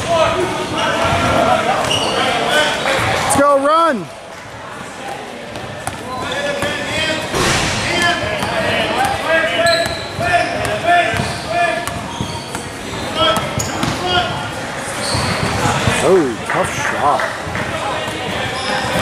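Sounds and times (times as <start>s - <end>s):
sneakers squeaking on floor: 0.4s - 3.4s, 4.8s - 16.1s, 17.4s - 19.0s
basketball dribbling on court: 5.5s - 6.8s, 8.2s - 14.4s, 17.4s - 19.0s.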